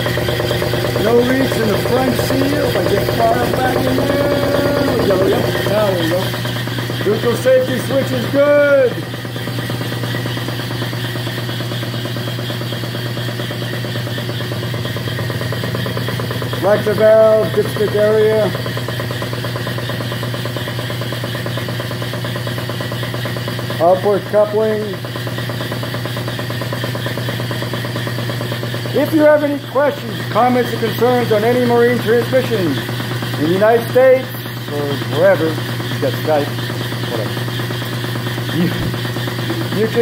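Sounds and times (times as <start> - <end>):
transmission spinning with gear whir: 0.0 - 40.0.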